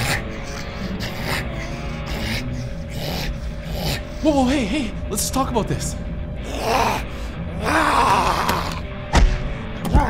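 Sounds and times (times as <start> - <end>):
tense film score: 0.0 - 10.0.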